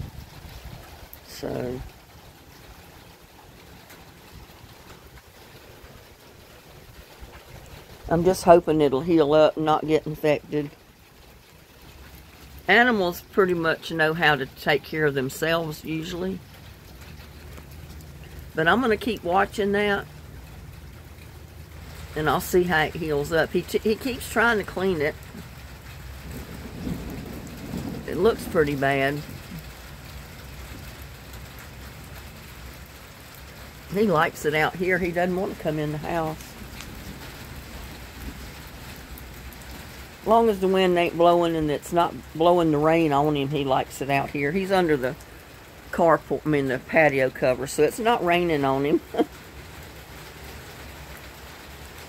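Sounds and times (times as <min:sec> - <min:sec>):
wind rumbling on microphone: 0:00.0 - 0:08.7, 0:25.2 - 0:31.0
rain hissing: 0:00.0 - 0:52.0.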